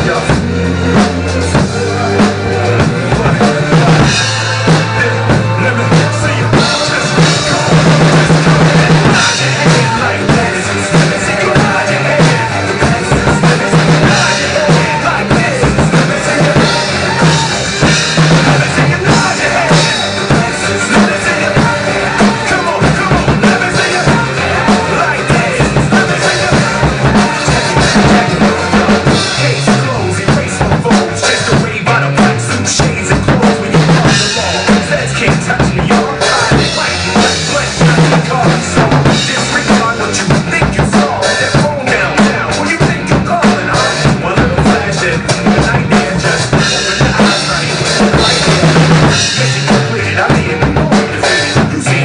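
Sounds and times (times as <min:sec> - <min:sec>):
backing track with bass line: 0:00.0 - 0:52.0
drum kit groove: 0:00.0 - 0:52.0.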